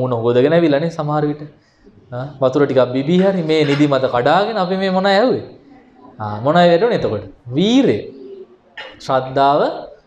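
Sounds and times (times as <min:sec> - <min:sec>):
man preaching: 0:00.0 - 0:10.0.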